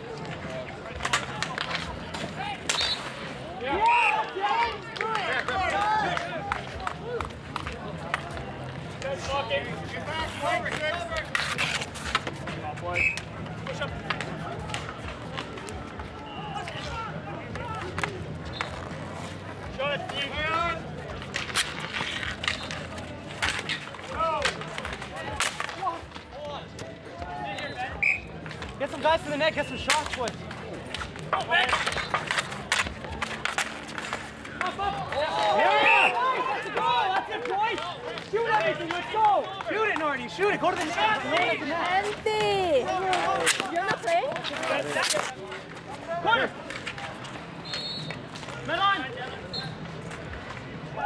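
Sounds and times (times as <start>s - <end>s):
people talking and calling out: 0.0s - 51.0s.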